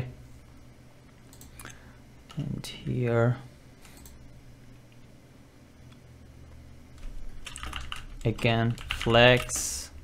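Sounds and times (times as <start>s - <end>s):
computer keyboard typing: 7.0s - 9.8s.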